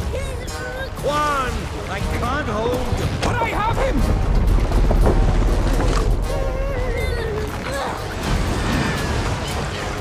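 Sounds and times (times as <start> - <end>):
film soundtrack music: 0.0 - 10.0.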